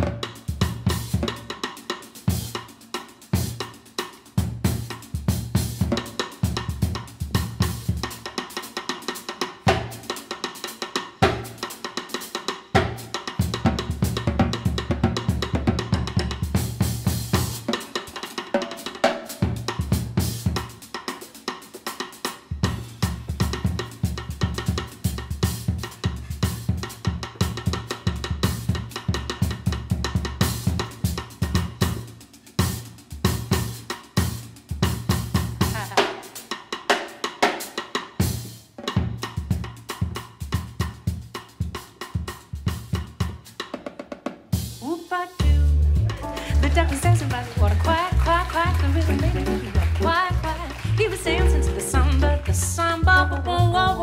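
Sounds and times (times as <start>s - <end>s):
jazz drum kit playing: 0.0s - 54.0s
upright bass: 45.4s - 54.0s.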